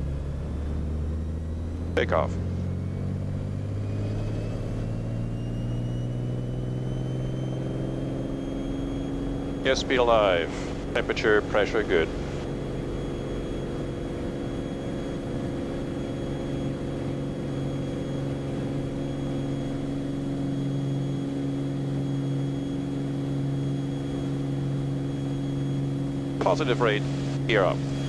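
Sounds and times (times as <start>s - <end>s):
propeller plane engine at full power: 0.0s - 28.0s.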